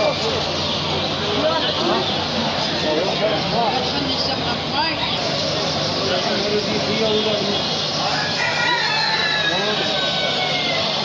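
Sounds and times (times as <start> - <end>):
market chatter: 0.0 - 11.0
rooster crowing: 8.0 - 11.0.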